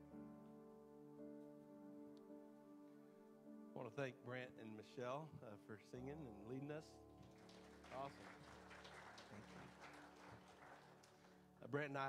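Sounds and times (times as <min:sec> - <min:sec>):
scattered hand claps: 0:07.2 - 0:11.6.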